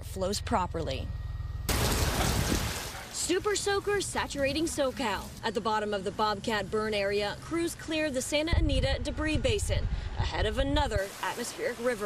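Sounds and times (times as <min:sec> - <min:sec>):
low background hum: 0:00.0 - 0:11.0
heavy rain falling: 0:01.7 - 0:03.3.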